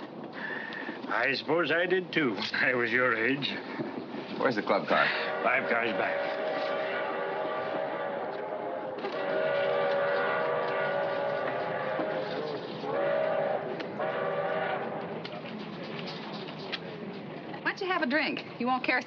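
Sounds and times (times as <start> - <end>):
passenger train rumbling: 0.0 - 19.0.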